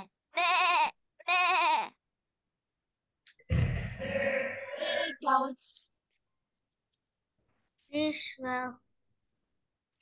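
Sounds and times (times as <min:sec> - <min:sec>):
goat bleating: 0:00.0 - 0:02.0.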